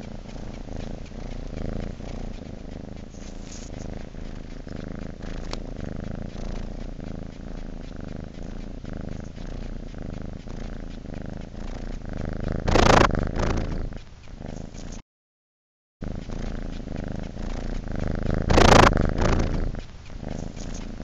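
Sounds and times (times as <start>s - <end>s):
cat purring: 0.0s - 15.0s, 16.0s - 21.0s.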